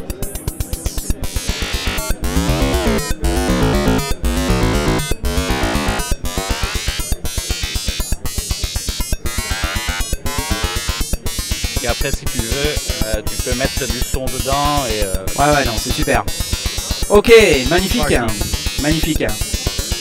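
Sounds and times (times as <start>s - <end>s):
pulsing synthesizer pattern flanging: 0.0s - 20.0s.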